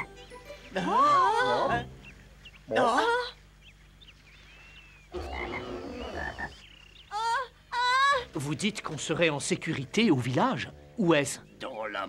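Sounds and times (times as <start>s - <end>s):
cartoon frog croaking: 5.1s - 6.6s.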